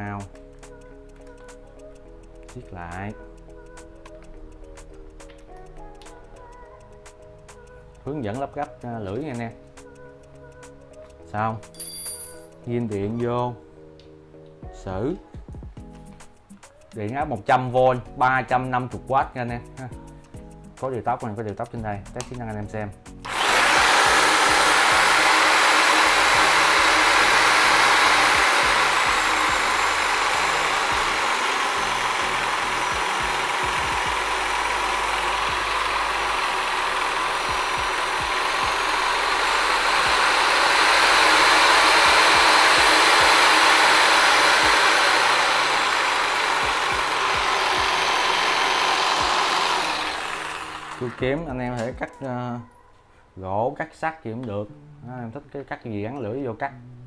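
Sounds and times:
reciprocating saw running: 23.2s - 51.9s.

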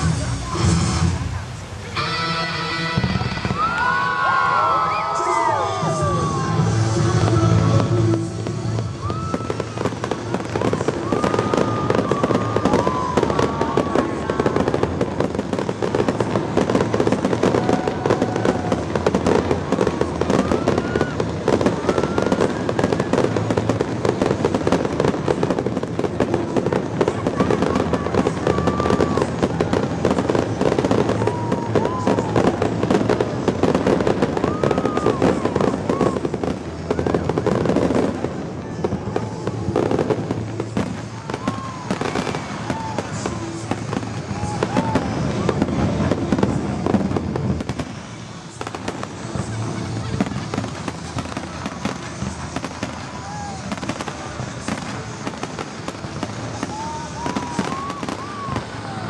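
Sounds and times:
fireworks bursting and crackling: 0.0s - 59.0s.

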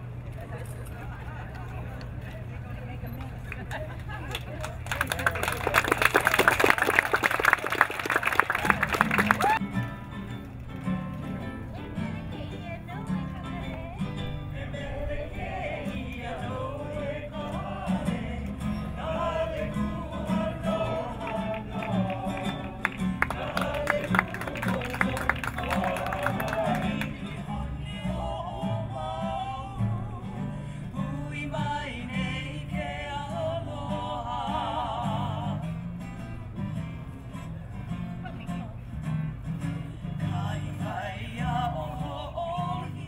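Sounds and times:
crowd applauding: 3.5s - 9.6s, 21.2s - 27.1s
music: 8.6s - 43.0s
ukulele and guitar strumming: 9.0s - 14.6s
women singing: 14.5s - 35.7s, 40.3s - 43.0s.

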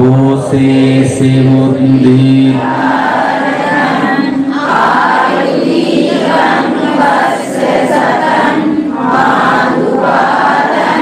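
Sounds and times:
voices chanting together: 0.0s - 11.0s.

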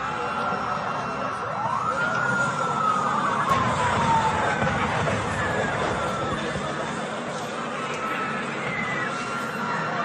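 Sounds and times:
siren rising and falling: 0.2s - 6.8s.

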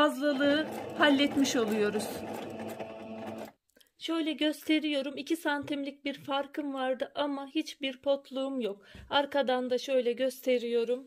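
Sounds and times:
sewing machine stitching: 0.2s - 3.6s.

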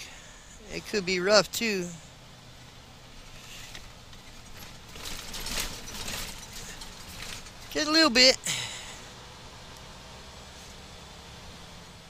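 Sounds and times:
road noise: 0.0s - 12.0s
truck engine drone: 0.0s - 12.0s
rough rattling: 3.2s - 8.3s.

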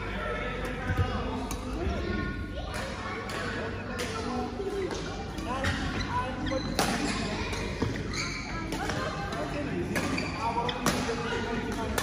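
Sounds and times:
voices chattering: 0.0s - 12.0s
shoes squeaking on court floor: 5.0s - 11.2s.

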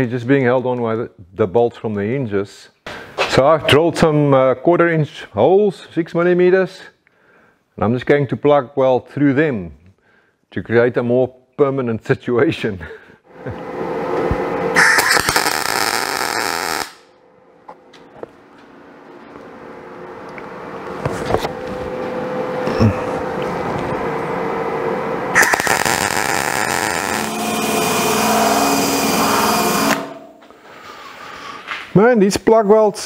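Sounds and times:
welding arc hissing crackle: 14.8s - 17.1s, 25.3s - 31.0s.

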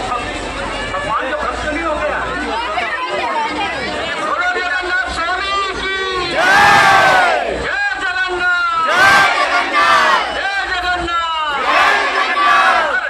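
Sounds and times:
crowd of men cheering: 6.3s - 7.7s, 8.8s - 10.4s.

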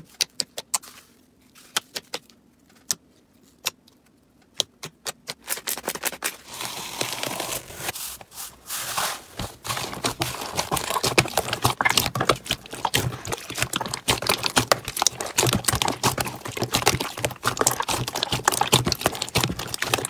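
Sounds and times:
slime crackling: 8.9s - 20.0s.

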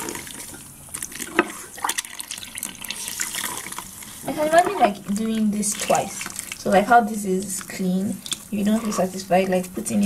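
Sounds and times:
sharp water splashes: 0.0s - 8.7s
wet sponge squeezed in water: 0.0s - 9.2s.

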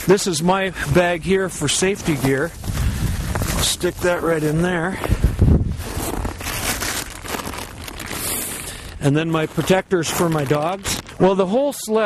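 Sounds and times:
nylon fabric rustling and crinkling: 0.8s - 12.0s.

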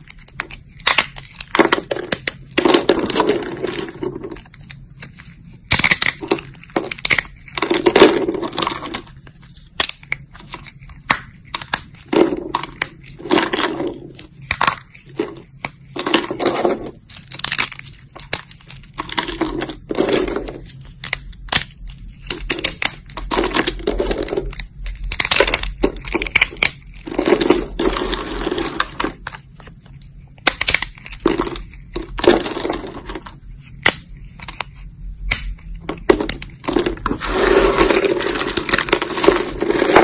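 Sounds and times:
soap cracking and snapping: 0.0s - 29.8s, 30.4s - 37.1s
soap crumbling: 0.0s - 40.0s.

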